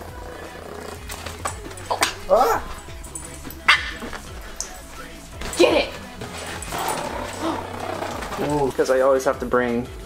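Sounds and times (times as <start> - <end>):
small dogs growling: 0.0 - 8.8.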